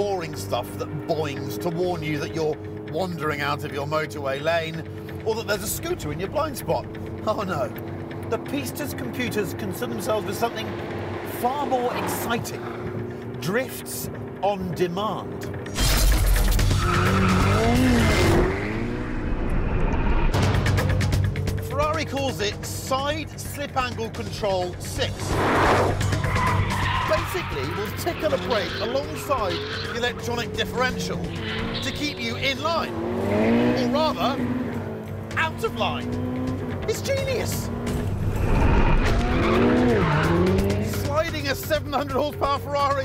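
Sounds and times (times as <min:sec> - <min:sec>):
sports car engine: 0:00.0 - 0:42.5
background music: 0:00.0 - 0:43.0
tyres squealing: 0:25.9 - 0:33.2, 0:38.8 - 0:40.9.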